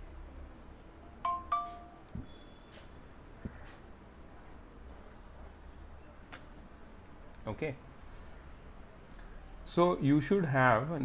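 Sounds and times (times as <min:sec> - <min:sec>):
two-note notification chime: 0:01.3 - 0:02.0.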